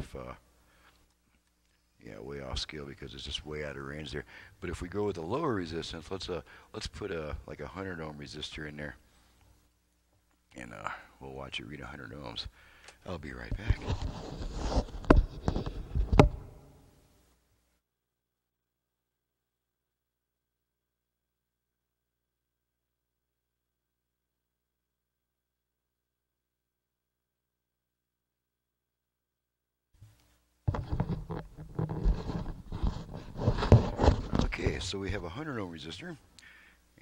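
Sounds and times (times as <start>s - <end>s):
handling noise knocks and thumps: 13.5s - 16.6s, 30.7s - 34.8s.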